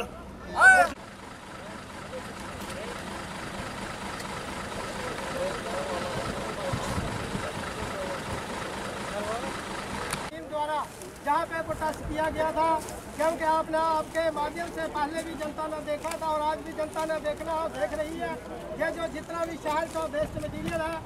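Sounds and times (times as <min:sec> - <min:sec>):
faint voices: 0:00.0 - 0:21.0
vehicle engines idling: 0:00.0 - 0:21.0.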